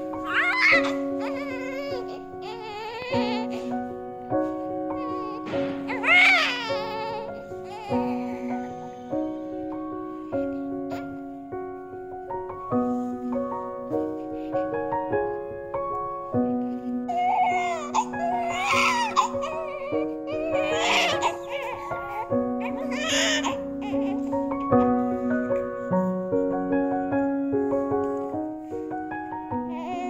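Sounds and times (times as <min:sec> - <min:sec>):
newborn baby crying: 0:00.0 - 0:03.9, 0:04.8 - 0:11.2, 0:17.1 - 0:24.7, 0:29.6 - 0:30.0
background music with held notes: 0:00.0 - 0:30.0.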